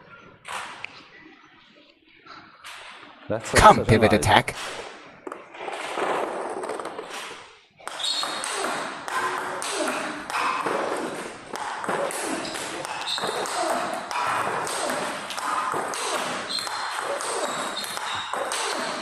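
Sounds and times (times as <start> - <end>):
table tennis balls hit and bouncing: 0.4 - 0.9, 4.5 - 19.0.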